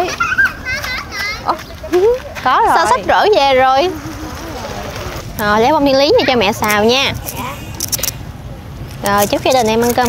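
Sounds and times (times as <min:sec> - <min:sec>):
women and children chattering: 0:01.4 - 0:10.0.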